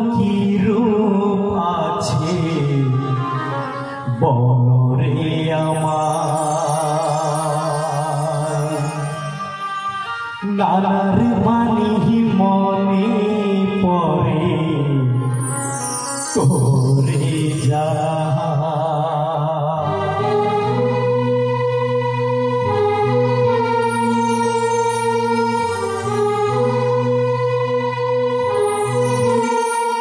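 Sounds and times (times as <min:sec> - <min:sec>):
man singing into a microphone: 0:00.0 - 0:09.7, 0:10.4 - 0:20.8.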